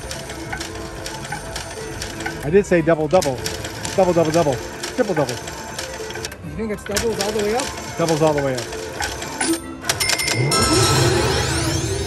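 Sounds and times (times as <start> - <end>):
slot machine reels clicking: 0.0 - 12.0
electronic tones: 9.4 - 12.0.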